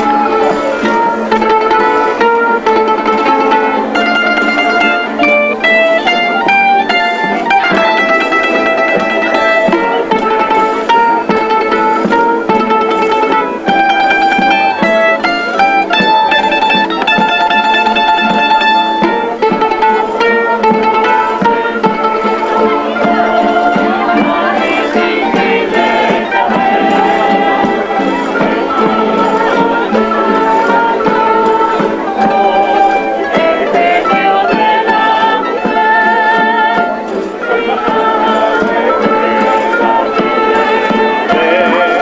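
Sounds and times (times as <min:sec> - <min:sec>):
folk string band playing: 0:00.0 - 0:42.0.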